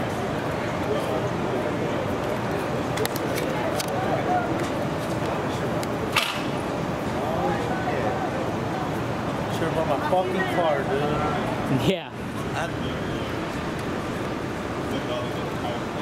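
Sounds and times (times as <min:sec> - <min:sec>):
street noise hum: 0:00.0 - 0:16.0
people talking indistinctly: 0:00.8 - 0:16.0.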